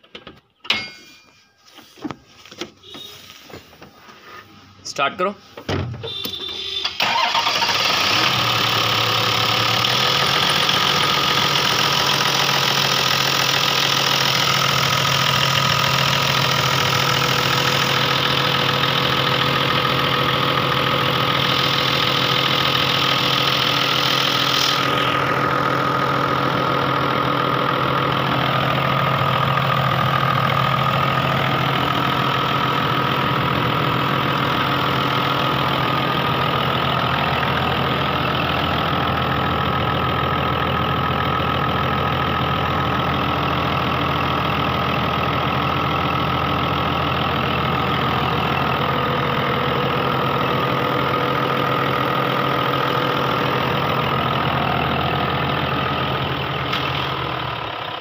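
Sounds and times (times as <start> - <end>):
diesel engine starting and idling: 2.3 - 58.0.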